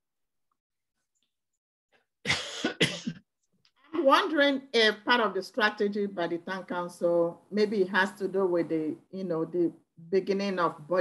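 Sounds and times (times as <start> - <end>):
person coughing: 2.3 - 3.2.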